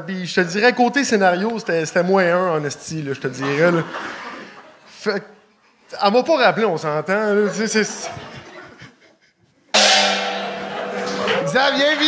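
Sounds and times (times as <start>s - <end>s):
gong struck with mallet: 9.8s - 11.6s.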